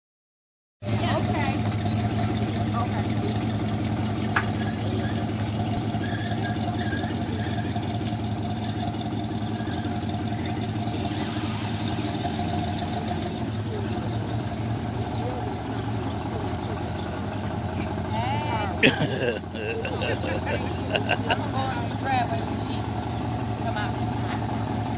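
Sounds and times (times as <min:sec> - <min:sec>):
car engine idling: 0:00.8 - 0:24.9.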